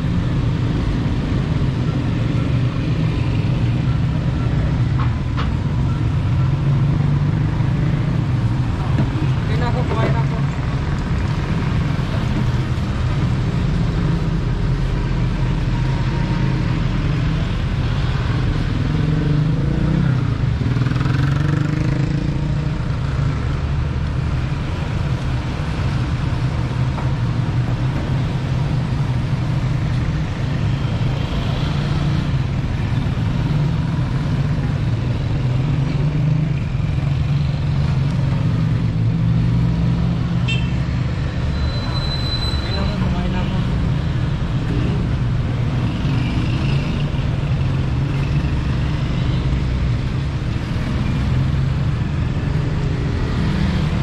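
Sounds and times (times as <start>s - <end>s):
road traffic hum: 0.0s - 54.0s.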